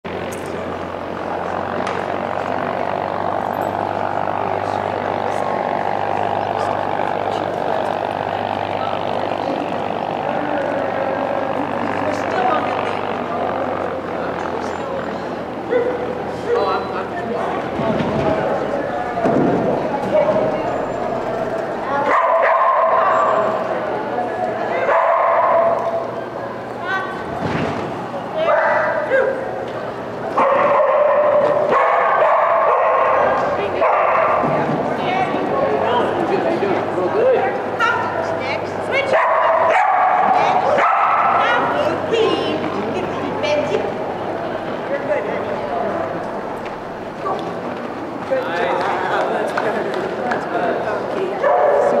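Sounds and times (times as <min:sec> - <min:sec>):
dog barking: 0:15.7 - 0:16.6, 0:22.0 - 0:23.4, 0:24.8 - 0:26.0, 0:30.4 - 0:34.5, 0:39.1 - 0:41.5, 0:51.4 - 0:52.0.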